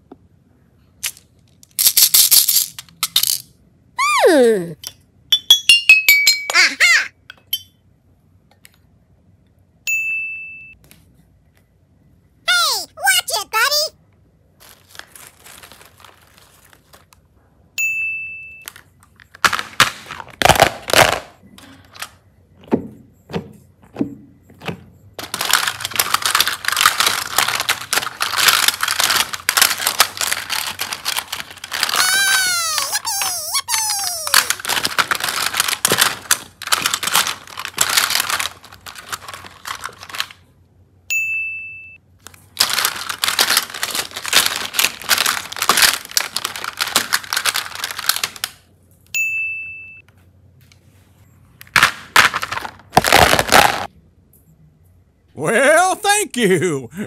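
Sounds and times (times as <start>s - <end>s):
plastic toys clattering in a basket: 1.0s - 3.5s, 24.6s - 40.5s, 42.2s - 48.7s
short ding: 9.9s - 10.8s, 41.1s - 42.0s, 49.2s - 50.0s.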